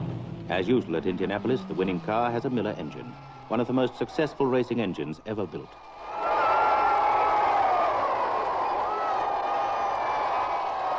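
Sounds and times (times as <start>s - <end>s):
large crowd cheering and shouting: 0.6s - 10.9s.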